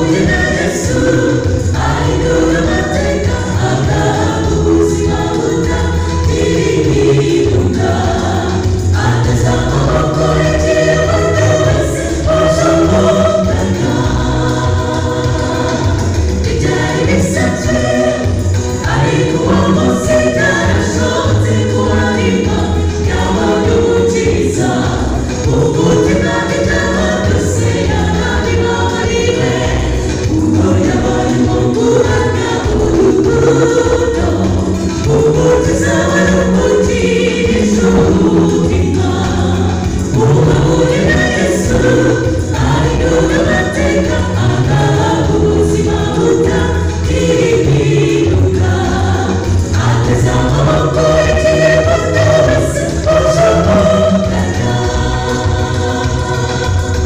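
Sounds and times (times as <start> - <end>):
choir singing gospel: 0.0 - 57.0.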